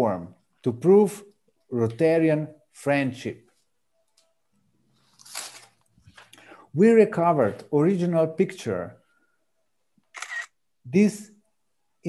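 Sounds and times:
person speaking: 0.0 - 3.6, 6.2 - 9.0, 10.2 - 11.4.

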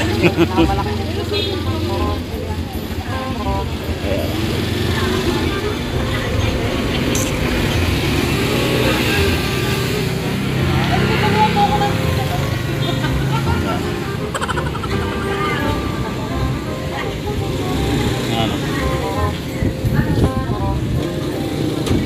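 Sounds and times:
people laughing: 0.0 - 19.0
small engine running: 0.0 - 19.6
voices: 0.0 - 22.0.

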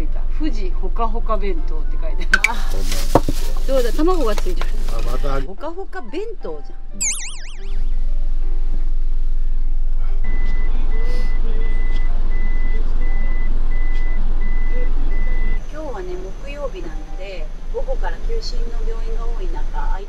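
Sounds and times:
warbling electronic sound effect: 7.0 - 8.0.

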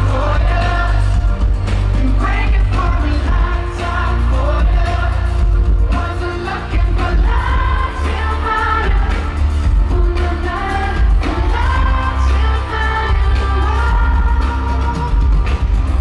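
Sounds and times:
man singing into microphone: 0.0 - 1.4, 2.0 - 7.5
pop band playing: 0.0 - 16.0.

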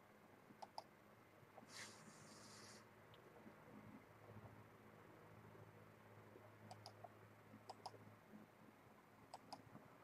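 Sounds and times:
low background hum: 0.0 - 10.0
computer mouse double-clicks: 0.6 - 0.9, 6.7 - 7.1, 7.7 - 8.0, 9.3 - 9.6.

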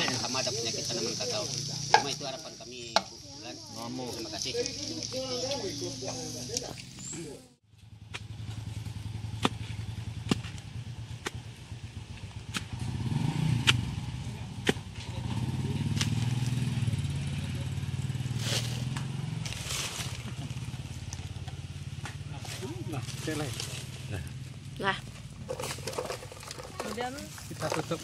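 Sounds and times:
blade stabbing into soil: 13.5 - 13.9, 18.4 - 20.3.

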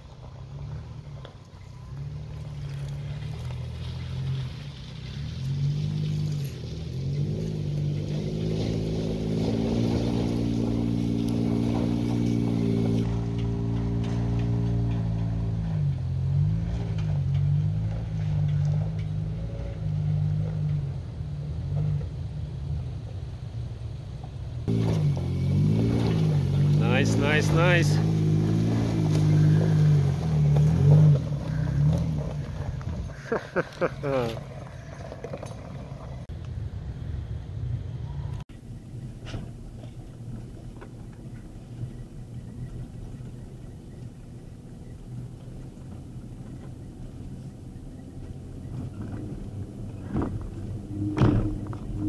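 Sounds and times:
engine working under load: 0.0 - 52.0.

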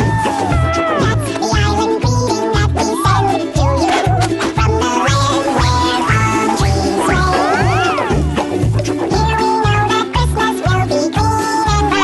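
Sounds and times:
upbeat novelty dance music: 0.0 - 12.0.

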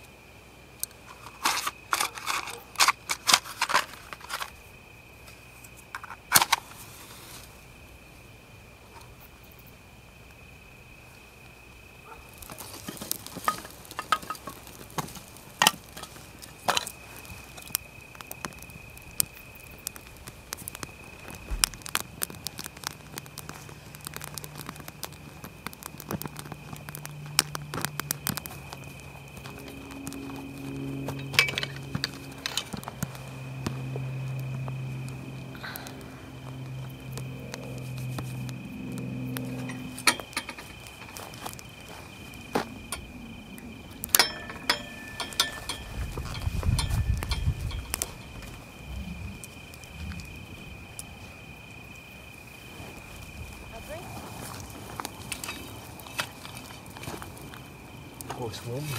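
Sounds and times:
steady high whine: 0.0 - 51.8
campfire crackling and popping: 0.2 - 58.9
low hum: 26.9 - 51.0.

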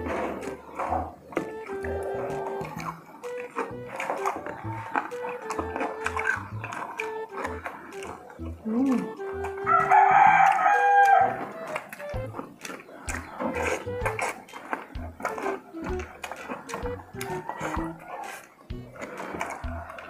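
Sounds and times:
background music with low beat: 0.0 - 18.0, 18.6 - 20.0
eating noises: 0.0 - 20.0.

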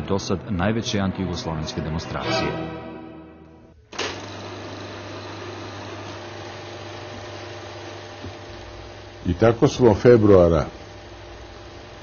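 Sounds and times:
music: 0.0 - 3.9
film projector whirring: 3.9 - 12.0.

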